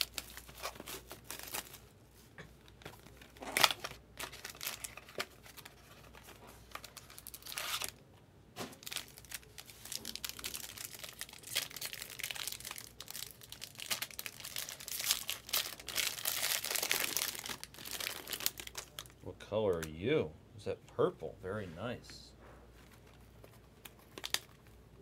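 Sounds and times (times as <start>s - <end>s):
foil wrapper crinkling and tearing: 0.0s - 1.9s, 3.0s - 8.0s, 8.8s - 19.2s, 23.8s - 24.7s.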